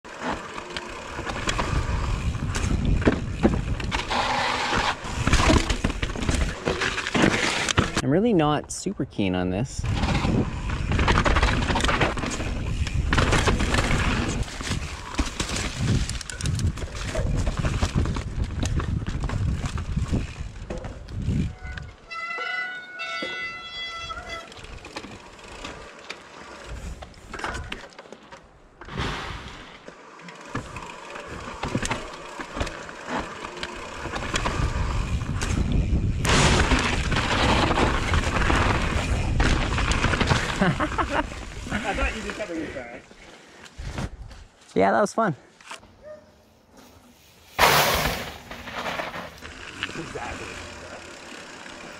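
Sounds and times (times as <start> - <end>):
bike rattling over rough ground: 0.1 - 8.0, 9.8 - 43.2, 47.6 - 51.9.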